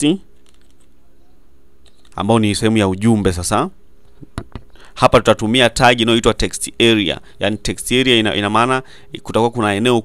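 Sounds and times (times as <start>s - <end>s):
low steady hum: 0.0s - 10.0s
computer keyboard typing: 0.4s - 0.9s.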